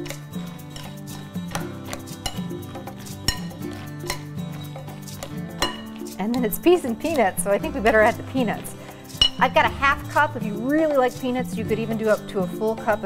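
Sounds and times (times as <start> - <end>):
metal clinking on glass: 0.0 - 6.1
spoon scraping in glass bowl: 0.0 - 11.2
background music: 0.0 - 13.0.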